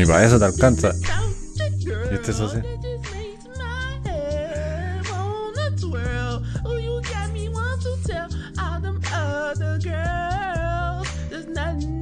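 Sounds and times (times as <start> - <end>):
held bass line: 0.0 - 7.0
sung vocal wavering in pitch: 0.6 - 3.0.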